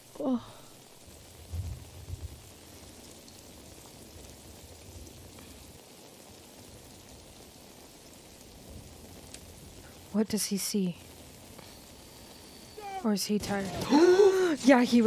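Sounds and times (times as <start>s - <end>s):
steady rain falling: 0.0s - 15.0s
low rumble: 1.4s - 2.7s.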